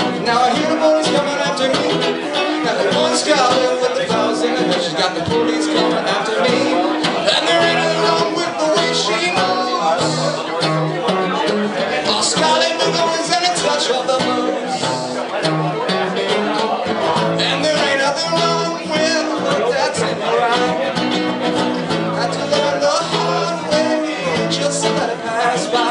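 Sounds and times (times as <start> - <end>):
guitar strumming: 0.0 - 25.9
man singing: 0.0 - 25.9.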